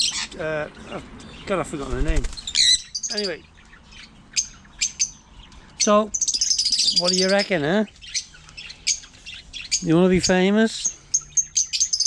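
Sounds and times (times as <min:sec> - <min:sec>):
parrots chirping and squawking: 0:00.0 - 0:12.0.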